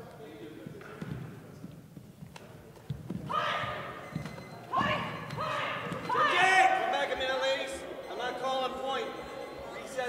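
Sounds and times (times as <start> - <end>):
high-pitched martial arts shouts: 3.3 - 3.8, 4.7 - 6.9.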